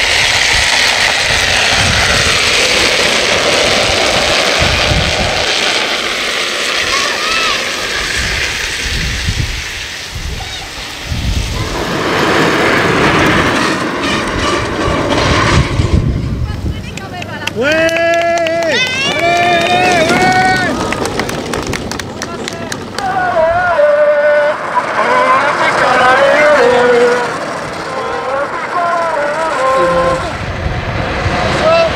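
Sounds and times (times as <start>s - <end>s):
wheels scraping across asphalt: 0.0s - 17.4s, 18.8s - 31.9s
low rumbling: 0.0s - 31.9s
person whooping: 17.6s - 21.0s.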